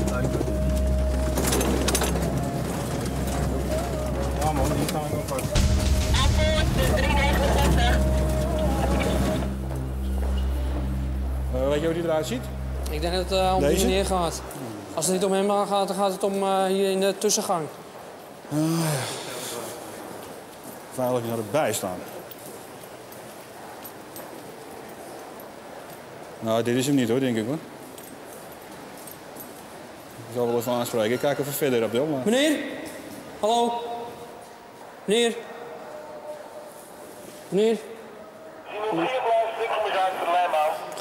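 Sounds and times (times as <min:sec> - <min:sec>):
metro train humming: 0:00.0 - 0:15.0, 0:34.1 - 0:40.9
indistinct voices: 0:00.0 - 0:15.3
steady background noise: 0:00.0 - 0:41.0
footsteps on hard floor: 0:08.2 - 0:11.0.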